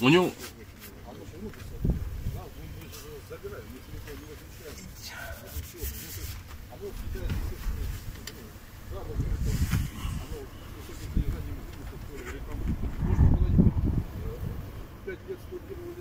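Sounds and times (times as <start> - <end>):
wind buffeting microphone: 1.6 - 2.8, 8.8 - 15.2.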